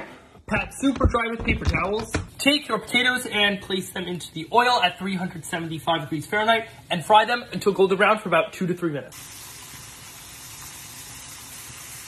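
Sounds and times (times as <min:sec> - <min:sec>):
potato slices sizzling in oil: 0:09.1 - 0:12.0.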